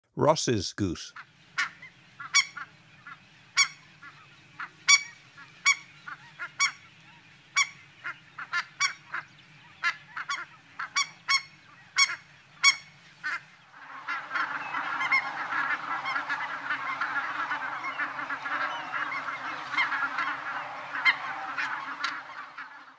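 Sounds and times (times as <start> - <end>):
geese calling: 1.2 - 22.9.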